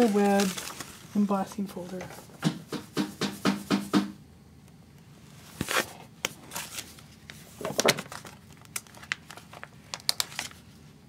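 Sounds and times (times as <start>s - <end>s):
hand tapping on plastic folder: 2.4s - 4.2s.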